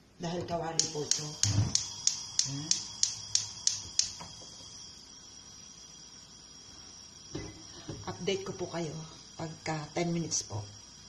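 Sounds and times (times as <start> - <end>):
gas burner hiss: 0.0 - 11.0
gas igniter clicking: 0.8 - 4.8.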